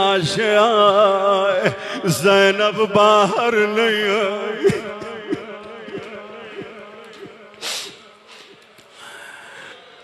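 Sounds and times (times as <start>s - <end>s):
faint breaths: 7.5s - 10.0s.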